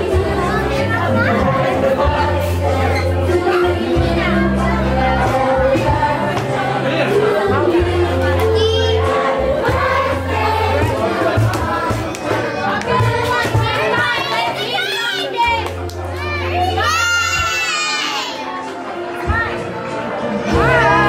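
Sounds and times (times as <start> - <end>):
children shouting and cheering: 8.4 - 19.8, 20.4 - 21.0
high child's shout: 16.4 - 18.5
party music with bass line: 20.4 - 21.0.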